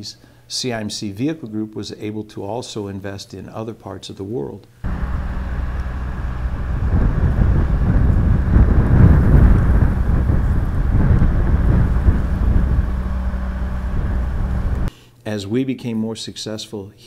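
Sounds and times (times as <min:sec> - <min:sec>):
wind rumbling on microphone: 0:04.9 - 0:14.9.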